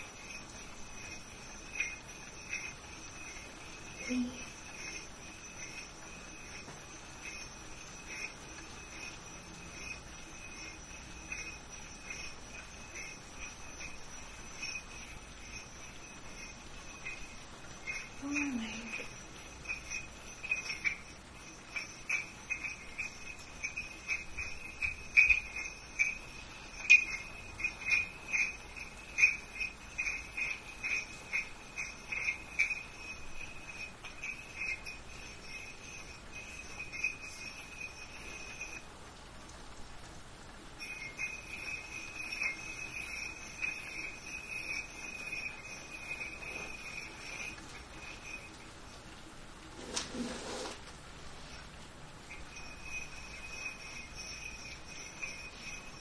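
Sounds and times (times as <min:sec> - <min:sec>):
crickets chirping: 0:00.0 - 0:50.7, 0:51.3 - 0:56.0.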